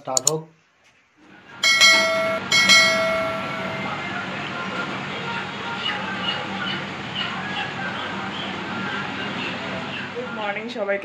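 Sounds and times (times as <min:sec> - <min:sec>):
room noise with low hum: 0:00.0 - 0:11.0
bright chime effects: 0:01.6 - 0:04.0.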